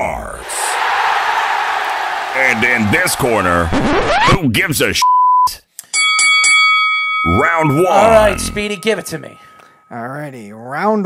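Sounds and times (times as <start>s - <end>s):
censor bleep: 5.0s - 5.6s
boxing ring bell clanging: 5.9s - 10.2s.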